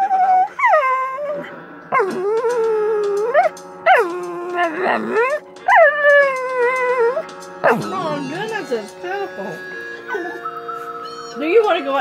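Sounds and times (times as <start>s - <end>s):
dog howling: 0.0s - 8.8s.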